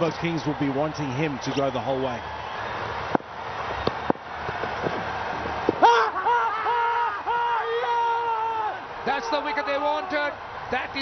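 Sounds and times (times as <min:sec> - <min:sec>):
people shouting in celebration: 0:05.8 - 0:11.0.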